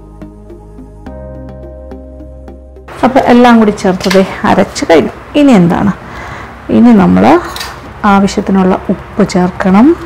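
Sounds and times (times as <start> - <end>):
woman speaking: 2.9 - 6.0, 6.7 - 10.0
low background noise: 2.9 - 10.0.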